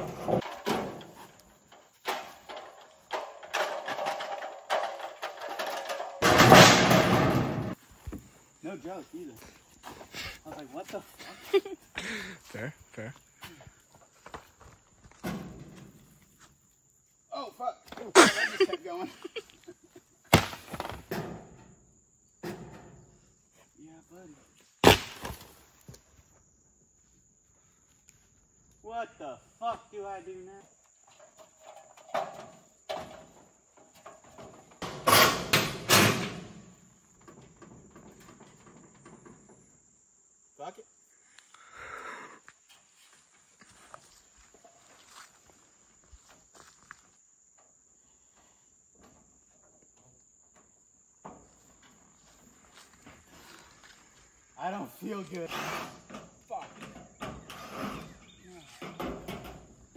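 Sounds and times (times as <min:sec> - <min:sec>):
high insect trill: 0:00.0 - 0:59.9.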